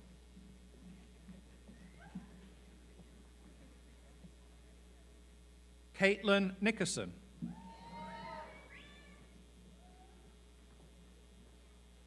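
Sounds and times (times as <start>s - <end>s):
audience whooping: 7.4s - 10.3s.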